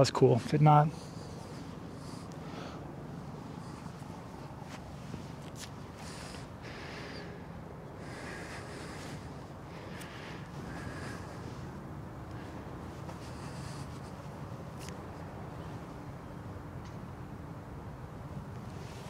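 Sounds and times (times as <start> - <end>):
outdoor background noise: 0.0 - 19.0
faint short rustles: 3.2 - 6.5.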